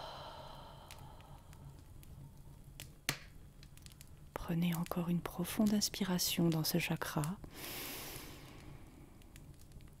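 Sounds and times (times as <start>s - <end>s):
soft breath out: 0.0s - 1.7s, 7.5s - 9.1s
faint low hum: 0.0s - 7.6s.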